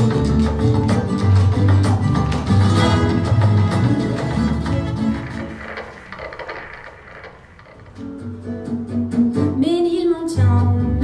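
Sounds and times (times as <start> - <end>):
music: 0.0 - 6.6, 7.9 - 11.0
footsteps and shuffles on stage: 0.0 - 8.6.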